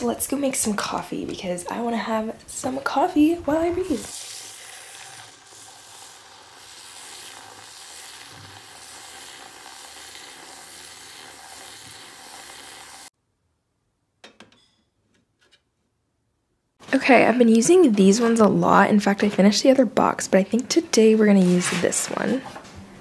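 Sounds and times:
milk frother whirring: 0:03.8 - 0:13.1.

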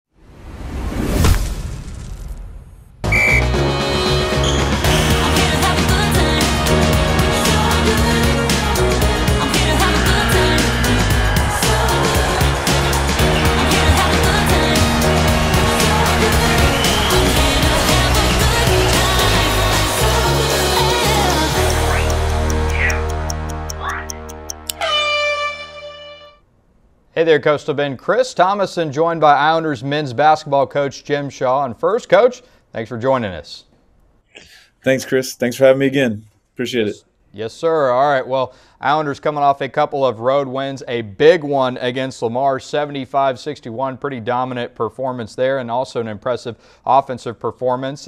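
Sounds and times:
whoosh sound effect: 0:00.2 - 0:02.9
theme tune with a beat: 0:03.0 - 0:26.4
low drone: 0:04.9 - 0:23.8.

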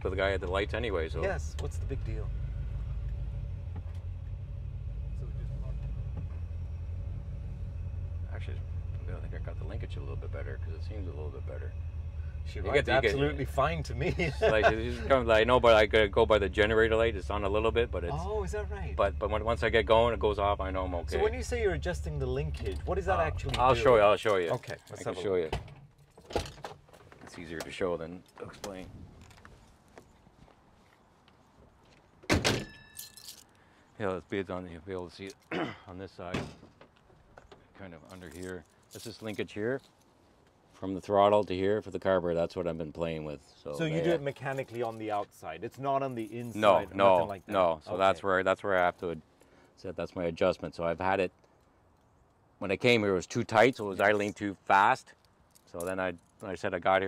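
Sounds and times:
car engine low rumble: 0:00.0 - 0:30.4
car door shutting: 0:05.7 - 0:06.5
metallic ringing: 0:32.6 - 0:33.4.

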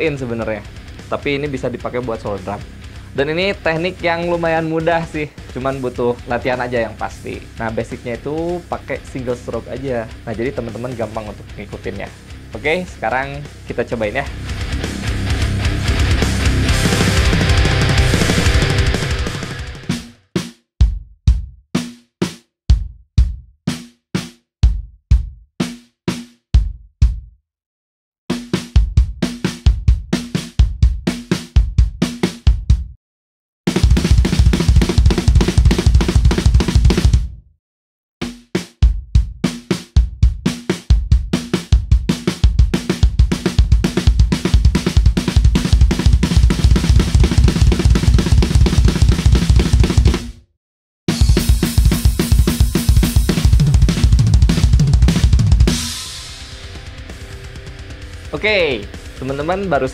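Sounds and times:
drum kit fill: 0:14.2 - 0:27.2, 0:28.3 - 0:32.8, 0:33.7 - 0:37.3, 0:38.2 - 0:50.4, 0:51.1 - 0:59.9
bass drum kicks: 0:14.4 - 0:20.0, 0:20.8 - 0:21.6, 0:22.7 - 0:23.5, 0:24.6 - 0:25.4, 0:26.6 - 0:27.3, 0:28.7 - 0:33.0, 0:33.7 - 0:37.4, 0:40.0 - 0:40.4, 0:41.0 - 0:50.4, 0:51.1 - 0:59.6.

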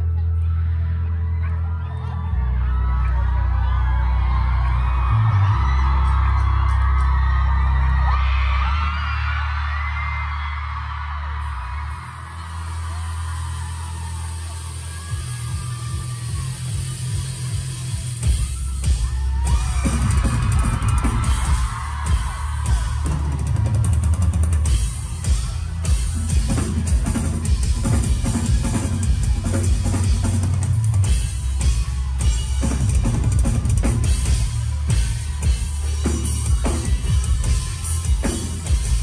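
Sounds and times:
crowd screaming and cheering: 0:00.0 - 0:39.0
rapid drum hits: 0:19.0 - 0:39.0.

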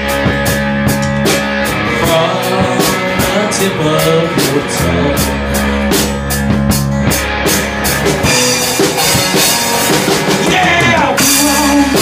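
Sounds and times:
drum kit beat: 0:00.0 - 0:12.0
electric guitar: 0:00.0 - 0:12.0.

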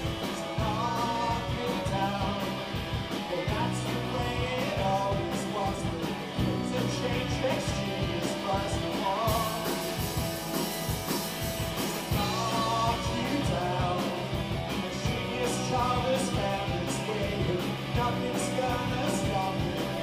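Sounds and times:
bass guitar: 0:00.0 - 0:20.0
drum kit: 0:00.0 - 0:20.0
electric guitars: 0:00.0 - 0:20.0.

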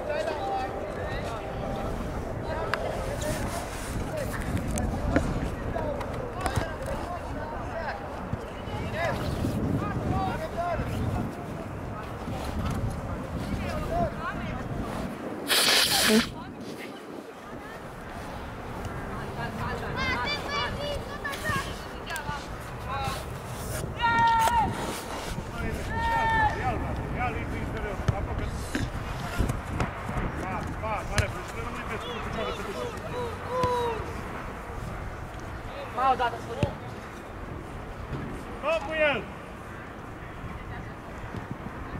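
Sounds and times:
loud rush of noise: 0:00.0 - 0:06.0
steady outdoor noise: 0:00.0 - 0:41.9
players shouting: 0:32.0 - 0:34.2.

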